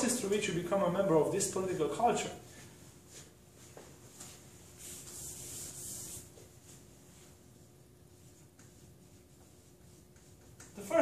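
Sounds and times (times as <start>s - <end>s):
eraser rubbing on whiteboard: 4.8s - 6.8s, 8.1s - 10.8s.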